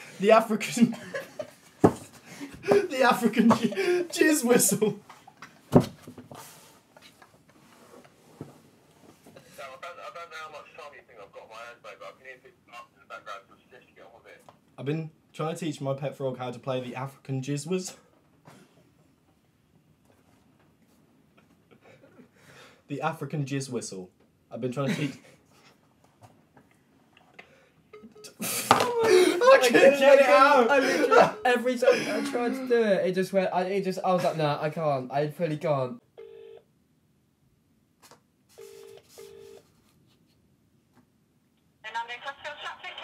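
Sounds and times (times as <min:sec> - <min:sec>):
stifled laughter: 0:02.4 - 0:05.0, 0:30.7 - 0:32.9.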